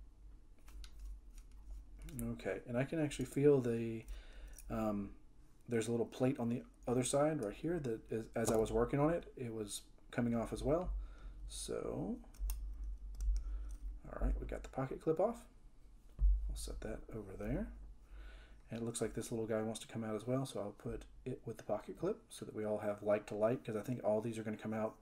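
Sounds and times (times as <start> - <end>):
light metallic clicks and taps: 8.4 - 8.7.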